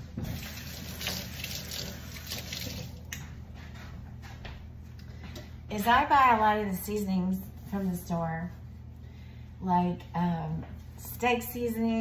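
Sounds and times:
hands washing under water: 0:00.2 - 0:03.1
tap running water: 0:00.2 - 0:03.2.

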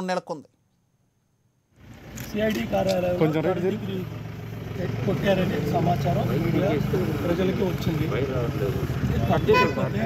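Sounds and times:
vehicle engine idling: 0:01.7 - 0:10.0
men talking: 0:02.2 - 0:10.0.

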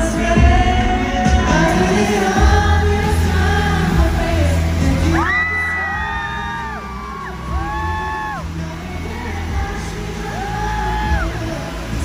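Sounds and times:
live pop music with bass: 0:00.0 - 0:12.0
fans screaming: 0:04.4 - 0:12.0.

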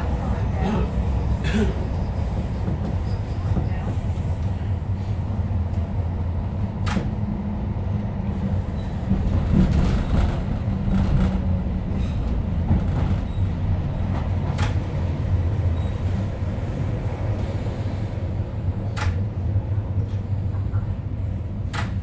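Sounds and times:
train rumble on rails: 0:00.0 - 0:22.0.

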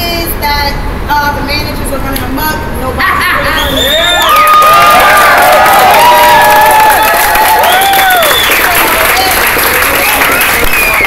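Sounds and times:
crowd cheering and shouting: 0:03.5 - 0:09.3
hand clapping: 0:05.4 - 0:11.0.

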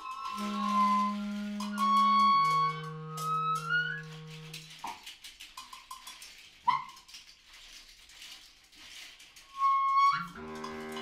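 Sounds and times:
loud high wind instrument note: 0:00.0 - 0:04.6
wind instrument tones: 0:00.0 - 0:04.8, 0:09.5 - 0:11.0.

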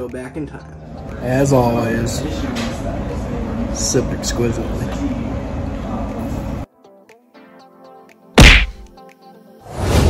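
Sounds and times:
soft background music: 0:00.0 - 0:10.0
loud sudden hit sound effect: 0:08.4 - 0:08.8.

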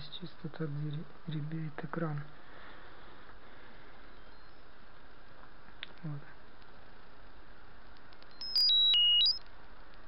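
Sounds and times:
electronic beep melody: 0:08.4 - 0:09.4.

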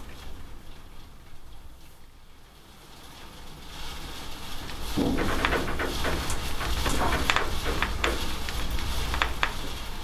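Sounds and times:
steady rain falling: 0:00.0 - 0:10.0.

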